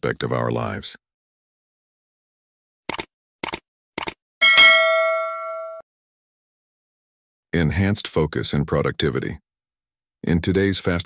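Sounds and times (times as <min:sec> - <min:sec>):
short clicks: 0:02.9 - 0:04.2
bell ding: 0:04.4 - 0:05.8.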